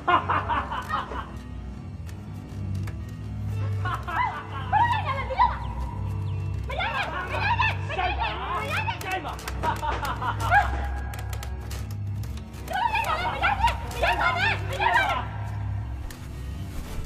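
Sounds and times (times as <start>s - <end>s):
background music: 0.0s - 17.0s
voices talking: 3.4s - 11.4s, 12.6s - 16.0s.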